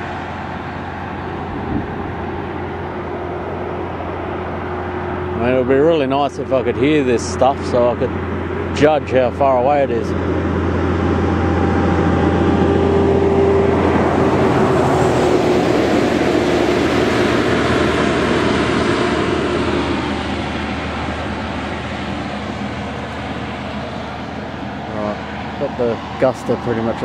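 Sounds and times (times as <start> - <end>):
vehicle passing: 0.0 - 27.0.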